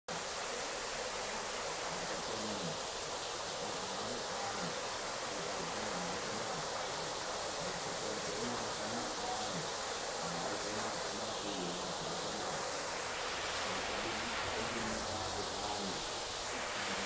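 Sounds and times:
water falling hiss: 0:00.1 - 0:17.0.

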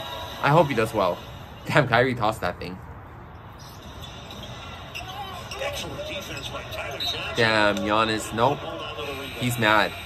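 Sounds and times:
arena crowd noise: 0:04.0 - 0:10.0.

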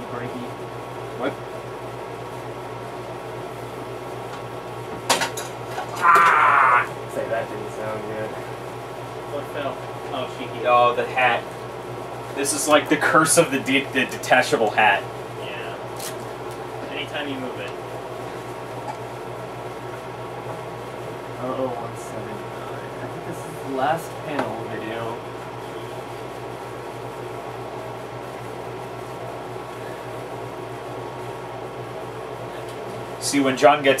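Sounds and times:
appliance hum: 0:00.0 - 0:34.0.

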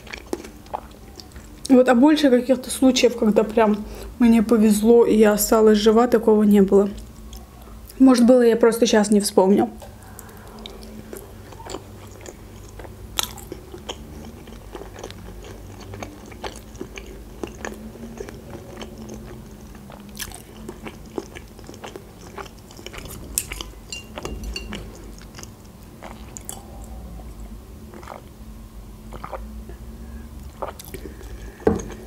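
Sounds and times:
chewing with mouth clicks: 0:00.0 - 0:01.7, 0:09.8 - 0:28.3, 0:29.1 - 0:29.8, 0:30.4 - 0:32.0.

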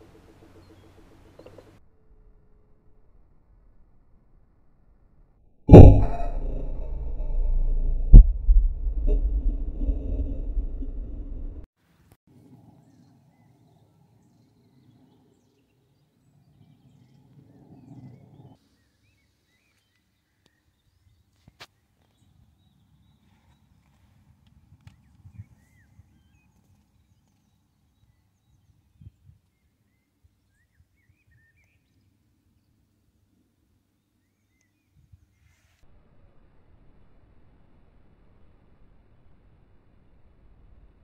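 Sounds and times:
wind rumble on microphone: 0:05.7 - 0:11.6.

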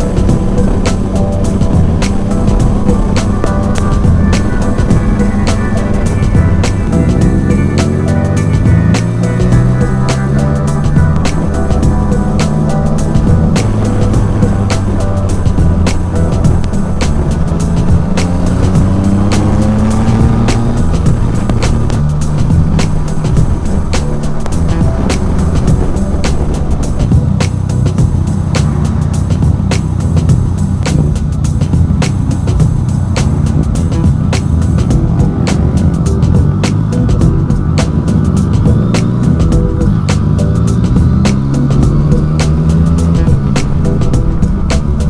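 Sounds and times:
background music: 0:00.0 - 0:45.0
motorcycle engine accelerating: 0:00.0 - 0:45.0.

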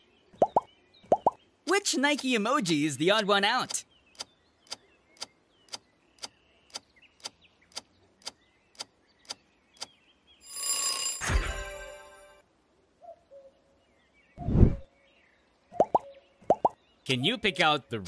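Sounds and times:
ringing alarm bell: 0:10.4 - 0:12.3.

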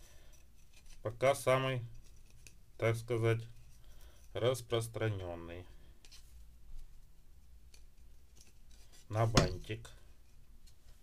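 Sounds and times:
light ticks and rustles: 0:00.0 - 0:09.2.

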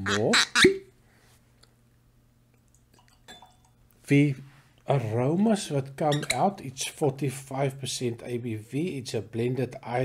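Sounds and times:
glass clinking: 0:03.0 - 0:03.8.

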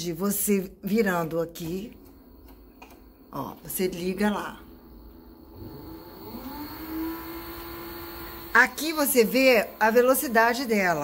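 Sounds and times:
motor whine spinning up: 0:05.3 - 0:11.0.

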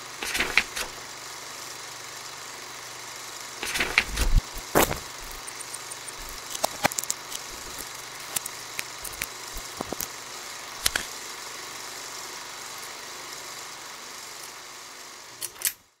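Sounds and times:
steady hiss: 0:00.0 - 0:15.4
sharp clicks and knocks: 0:03.6 - 0:10.1.

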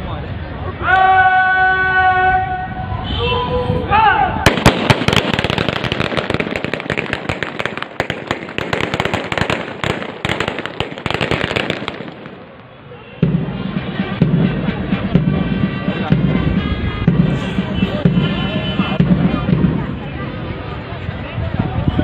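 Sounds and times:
rapid rifle shots: 0:04.5 - 0:12.4.

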